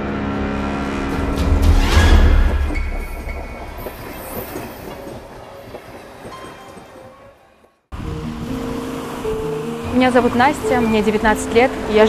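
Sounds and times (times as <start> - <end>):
train passing rumble: 0.5 - 12.0.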